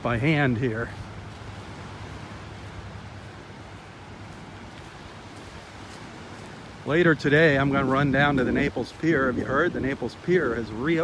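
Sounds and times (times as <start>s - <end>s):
surf lapping at shore: 0.0s - 11.0s.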